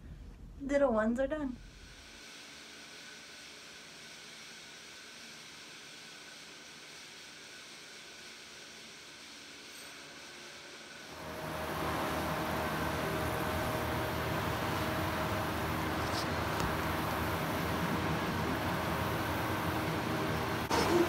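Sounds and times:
faint steady hums: 0:00.0 - 0:21.0
loud rush of outdoor noise: 0:11.1 - 0:21.0.

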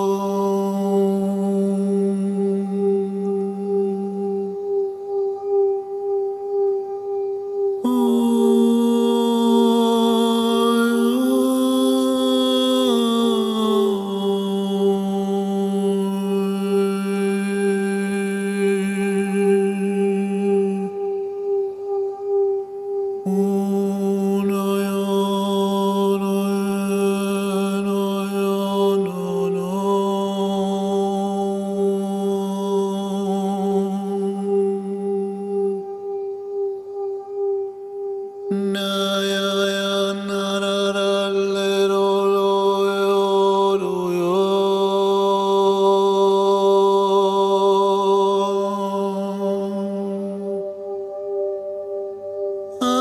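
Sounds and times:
low chanted tone: 0:00.0 - 0:53.0
ringing drone: 0:00.0 - 0:53.0.

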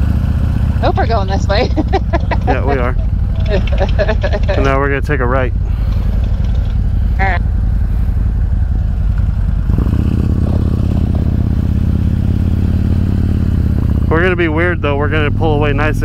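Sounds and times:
motorcycle engine idling and revving: 0:00.0 - 0:16.0.

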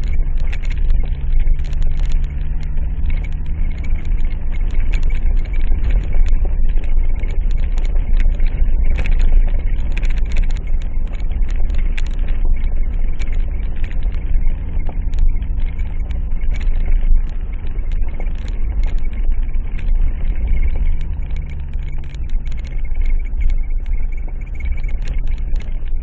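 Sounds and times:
rattles and knocks over gravel: 0:00.0 - 0:26.0
vehicle engine running at low revs: 0:00.0 - 0:26.0.

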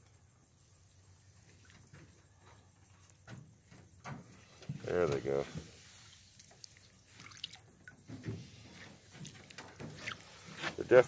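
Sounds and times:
soft knocks or rustles: 0:07.9 - 0:11.0.

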